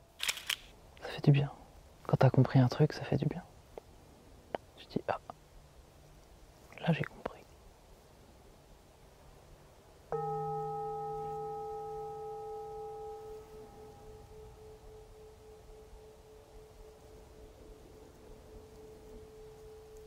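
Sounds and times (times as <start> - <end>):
metal singing bowl ringing: 10.1 - 20.0.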